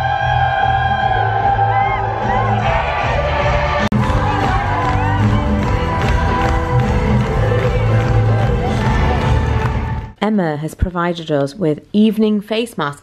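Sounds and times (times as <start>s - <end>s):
crowd cheering: 0.0s - 10.2s.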